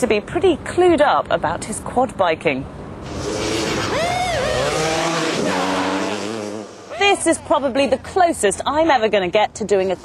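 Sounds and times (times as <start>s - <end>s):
quad bike engine revving: 3.0s - 7.1s.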